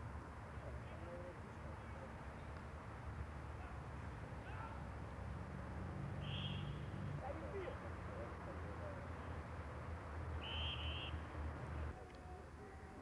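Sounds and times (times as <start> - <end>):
high trilling whistle: 10.4 - 11.2.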